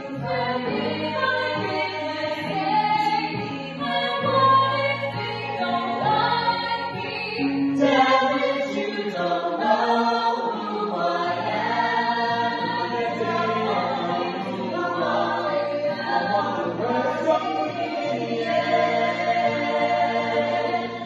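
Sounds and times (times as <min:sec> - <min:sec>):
group singing in harmony: 0:00.0 - 0:21.0.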